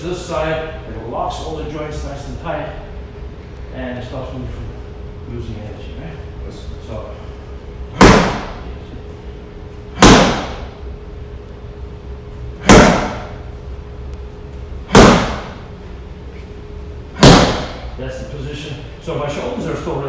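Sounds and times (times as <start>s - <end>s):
punches hitting strike pad: 7.9s - 8.7s, 9.9s - 10.8s, 12.6s - 13.4s, 14.8s - 15.6s, 17.1s - 17.9s.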